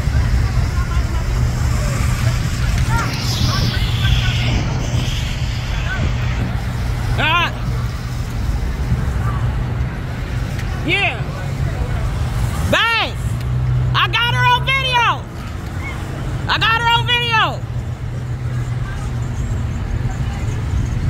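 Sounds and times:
street traffic rumble: 0.0s - 21.0s.

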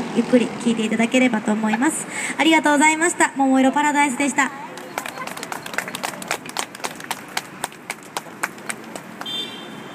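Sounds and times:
sparse applause: 4.7s - 9.4s.

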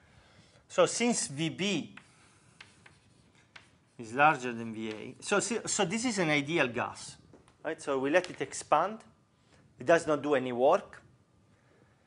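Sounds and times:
chalk tapping on board: 1.9s - 3.9s, 4.8s - 5.2s
chalk scratching on blackboard: 2.0s - 5.7s.

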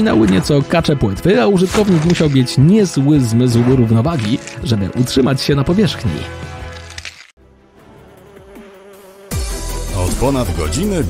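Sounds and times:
cartoon insect buzzing: 8.1s - 9.9s
music with deep bass: 9.3s - 11.0s.

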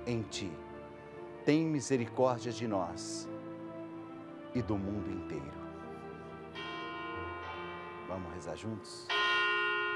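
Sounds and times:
soft music bed: 0.0s - 9.9s
ringing bell strikes: 6.6s - 9.9s.

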